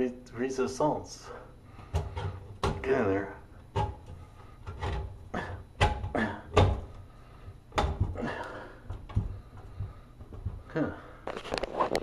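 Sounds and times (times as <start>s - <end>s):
light fixture knocking and thumping: 1.9s - 3.0s, 3.7s - 5.2s, 5.8s - 7.0s, 7.7s - 10.7s.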